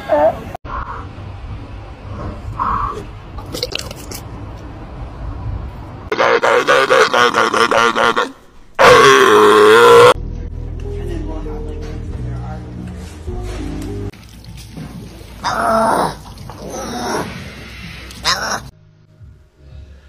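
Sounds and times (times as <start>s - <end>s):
sea lion barking: 6.1s - 10.2s
background music: 10.0s - 16.1s, 17.6s - 20.0s.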